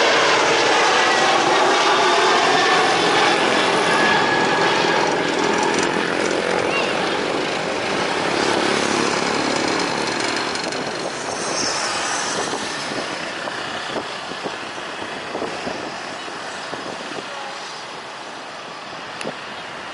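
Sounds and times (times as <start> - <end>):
jet airliner engine rumble: 0.0 - 19.9
road traffic: 0.0 - 19.9.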